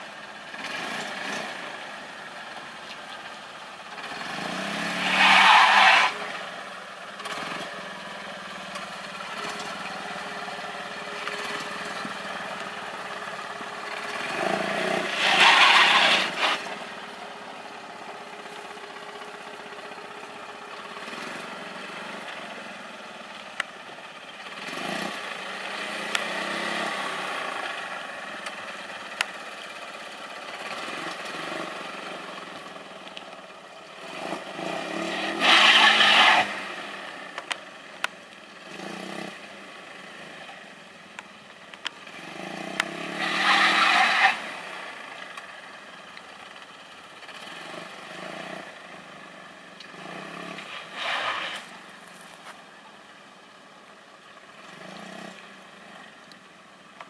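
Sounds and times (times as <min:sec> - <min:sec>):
car engine running slowly: 0:00.0 - 0:57.0.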